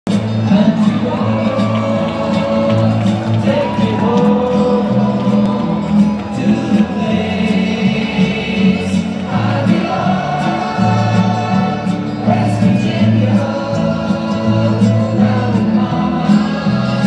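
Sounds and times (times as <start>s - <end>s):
crowd cheering: 0.1s - 17.0s
crowd singing along: 0.1s - 17.0s
loud rock music: 0.1s - 17.0s.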